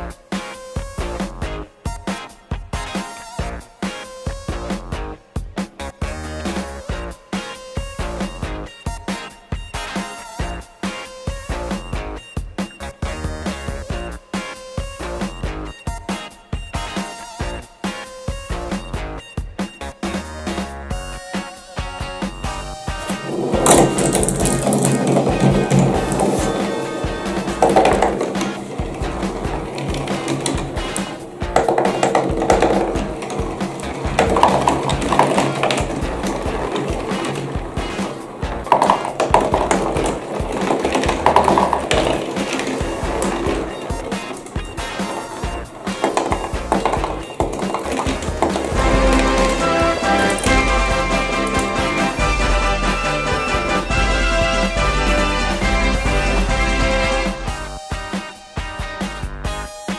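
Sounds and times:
background music: 0:00.0 - 0:59.9
glass marbles rolling and clattering: 0:23.0 - 0:53.9.

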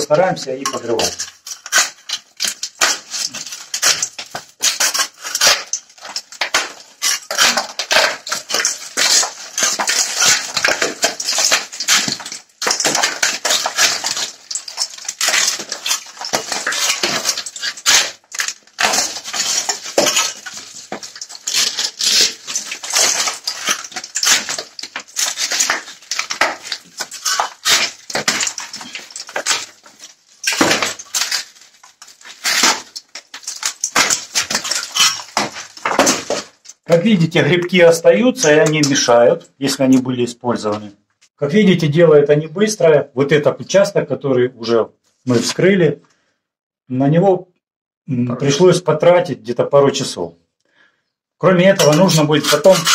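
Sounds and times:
foam insulation scraping and cracking: 0:00.0 - 0:39.3, 0:51.4 - 0:52.9.

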